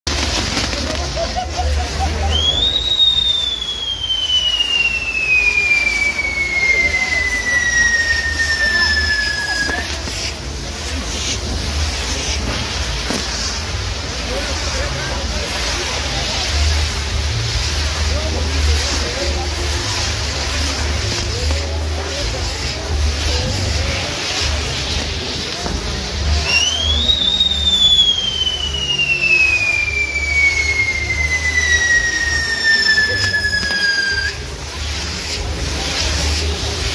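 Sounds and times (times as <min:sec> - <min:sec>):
fireworks fountains hissing: 0:00.0 - 0:36.9
falling firework whistle: 0:00.1 - 0:36.9.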